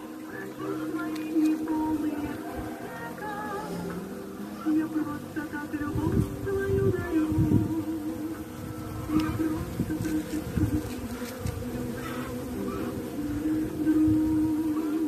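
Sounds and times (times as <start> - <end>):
honeybees buzzing: 0.0 - 15.0.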